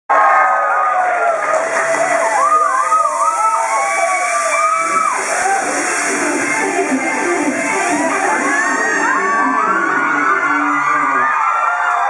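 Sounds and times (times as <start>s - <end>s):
audience screaming and cheering: 0.1s - 12.0s
music: 1.3s - 12.0s.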